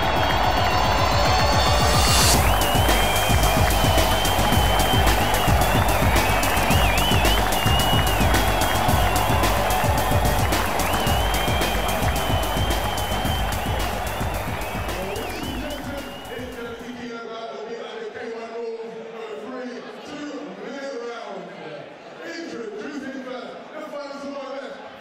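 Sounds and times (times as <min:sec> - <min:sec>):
music with steady beat: 0:00.0 - 0:16.8.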